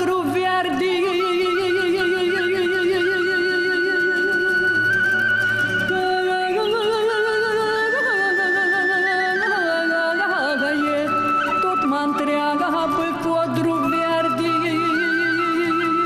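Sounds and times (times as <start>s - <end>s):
folk singing with wavering notes: 0.0s - 16.0s.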